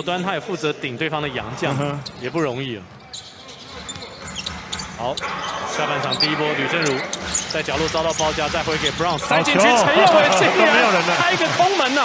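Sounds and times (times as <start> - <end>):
low arena crowd noise: 0.0 - 12.0
sneaker squeaks: 1.6 - 9.3.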